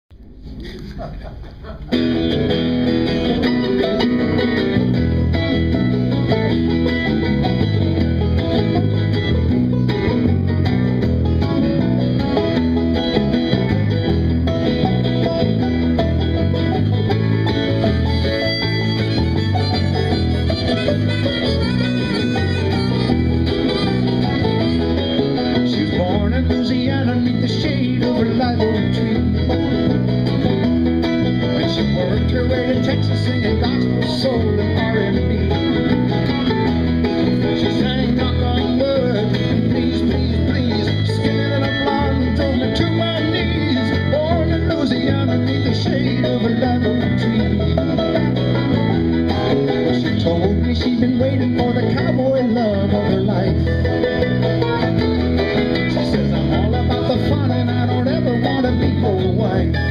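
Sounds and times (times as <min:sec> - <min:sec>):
electric bass: 0:00.0 - 0:59.9
acoustic guitar: 0:00.1 - 0:59.9
banjo: 0:00.2 - 0:59.9.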